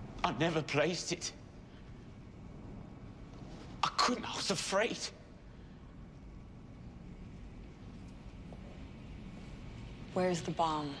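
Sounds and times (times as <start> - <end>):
low background rumble: 0.0 - 11.0.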